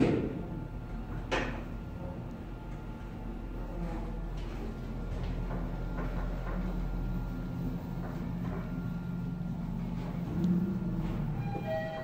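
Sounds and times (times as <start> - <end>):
elevator hum and rumble: 0.0 - 12.0.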